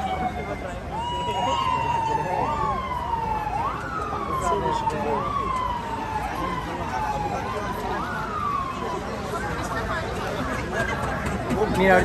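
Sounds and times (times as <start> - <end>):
crowd murmuring: 0.0 - 12.0
emergency vehicle siren: 0.0 - 12.0.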